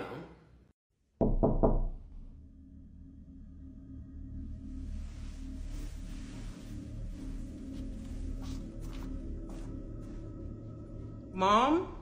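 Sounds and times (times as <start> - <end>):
knocks on a door: 1.2 - 2.0.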